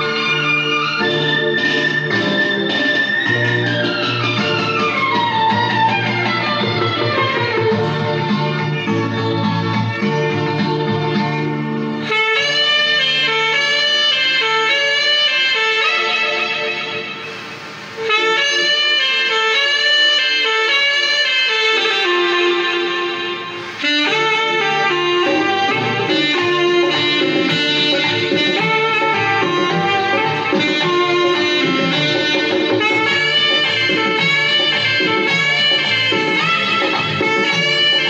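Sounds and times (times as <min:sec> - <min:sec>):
backing track music: 0:00.0 - 0:38.0
saxophone melody: 0:00.0 - 0:38.0.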